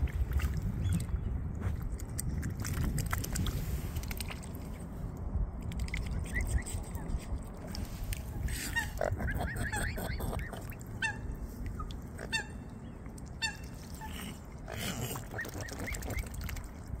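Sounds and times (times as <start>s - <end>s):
swans giving short high calls: 8.5s - 12.8s.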